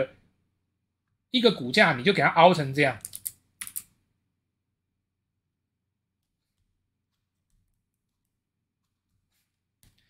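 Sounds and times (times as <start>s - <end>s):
computer keyboard key clicks: 3.0s - 3.9s.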